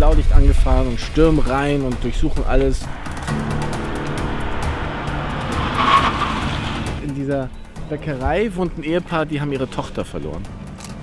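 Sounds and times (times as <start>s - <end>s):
background music: 0.0s - 11.0s
car driving up: 1.6s - 8.5s.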